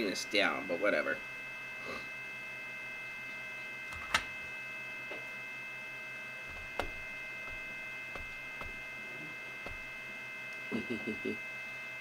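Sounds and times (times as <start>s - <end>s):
high-pitched electronic whine: 0.0s - 12.0s.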